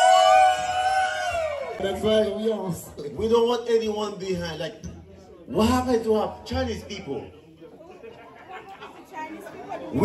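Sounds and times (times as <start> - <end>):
background chatter of guests: 0.0 - 10.0.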